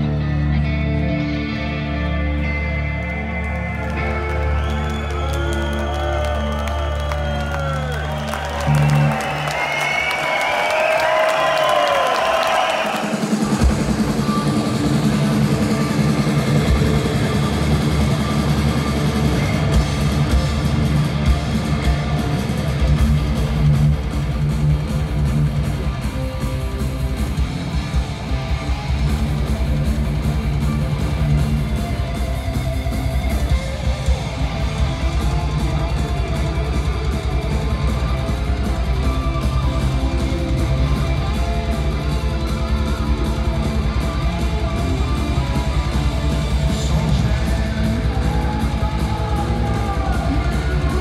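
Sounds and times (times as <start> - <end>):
electric guitar lead: 0.0 - 7.1, 13.0 - 51.0
heavy metal band playing: 0.0 - 51.0.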